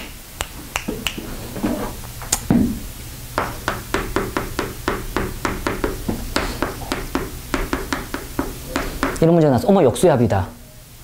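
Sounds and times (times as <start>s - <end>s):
chalk tapping and scratching: 3.7s - 9.2s.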